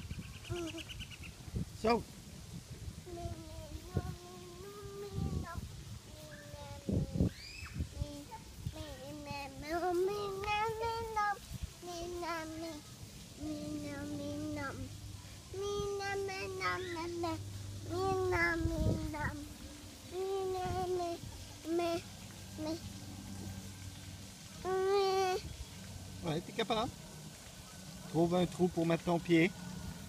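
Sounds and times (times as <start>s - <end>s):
child making held vocal sound: 0.5s - 0.9s, 15.6s - 19.5s, 20.1s - 22.0s, 22.6s - 22.8s, 24.6s - 25.5s
girl singing: 3.0s - 23.0s, 24.6s - 25.6s.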